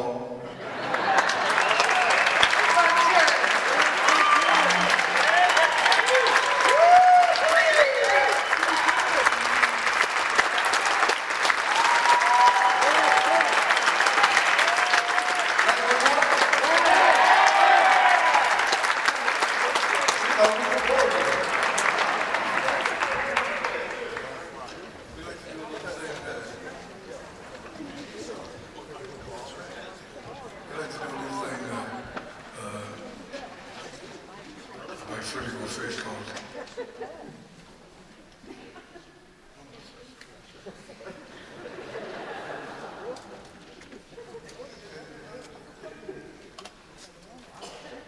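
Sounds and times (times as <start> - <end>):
audience applauding: 0.8 - 25.8
people whooping and cheering: 1.1 - 24.2.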